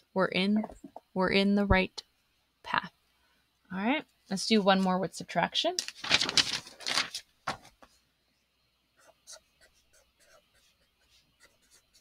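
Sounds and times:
pen scratching on paper: 0:09.0 - 0:12.0.

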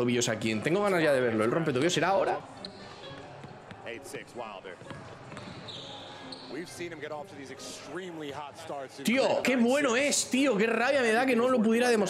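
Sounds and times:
basketball bouncing on hardwood: 0:04.8 - 0:05.7.

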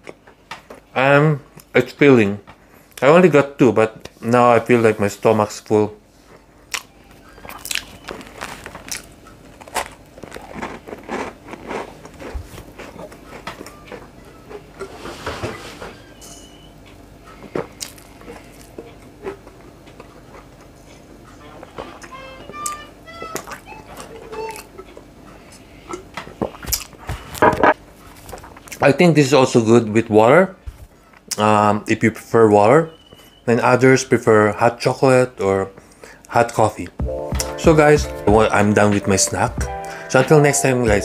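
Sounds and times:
person chewing and crunching: 0:06.7 - 0:14.9, 0:17.4 - 0:27.4.

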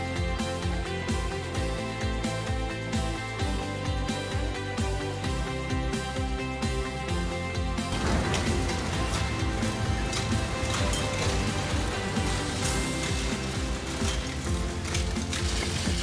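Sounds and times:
background music: 0:00.0 - 0:16.0
scrap metal machinery clatter: 0:07.9 - 0:16.0.

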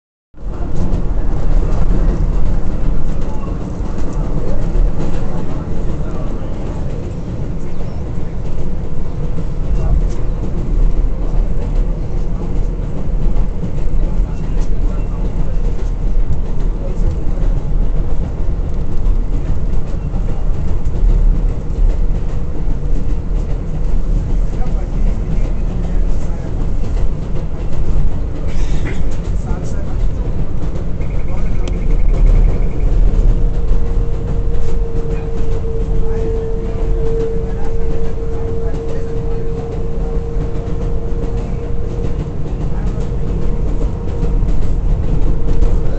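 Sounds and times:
subway train rumbling: 0:00.3 - 0:45.9
steady train whine: 0:00.4 - 0:45.9.

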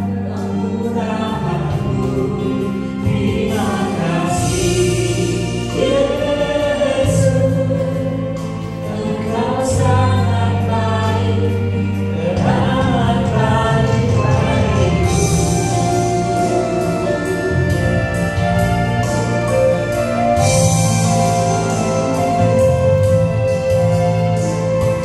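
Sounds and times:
man and woman singing: 0:00.0 - 0:18.6
sustained low chords: 0:00.0 - 0:25.0.

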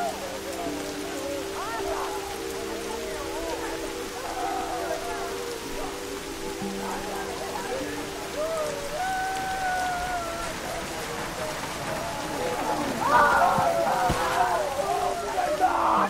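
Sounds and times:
faint wavering voices: 0:00.0 - 0:16.0
low sustained music notes: 0:00.0 - 0:16.0
steady rain falling: 0:00.0 - 0:16.0.

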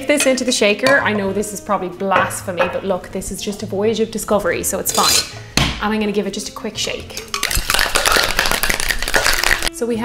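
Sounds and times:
ice rattling in cocktail shaker: 0:07.2 - 0:09.7.

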